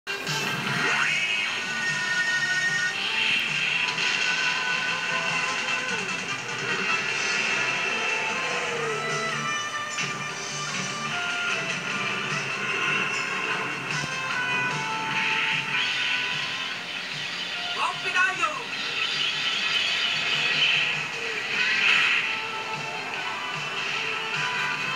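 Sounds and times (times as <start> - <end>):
tv soundtrack music: 0.1 - 24.9.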